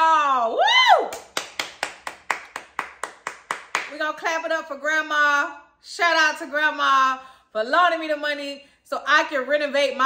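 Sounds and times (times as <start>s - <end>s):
person clapping hands: 0.9s - 4.0s.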